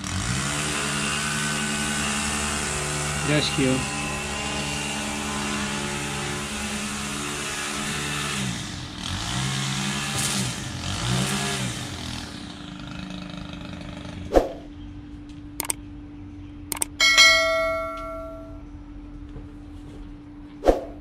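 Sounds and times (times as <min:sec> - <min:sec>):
small engine running: 0:00.0 - 0:15.9
sharp click: 0:15.6 - 0:15.8, 0:16.7 - 0:17.0.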